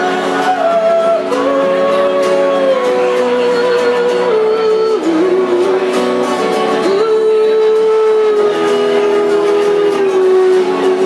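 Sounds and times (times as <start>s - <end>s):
guitar accompaniment: 0.0s - 11.0s
woman singing: 0.0s - 11.0s.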